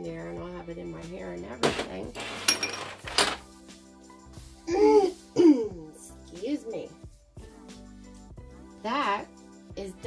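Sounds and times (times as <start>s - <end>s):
background music: 0.0s - 10.0s
glass jars clinking: 1.6s - 3.4s.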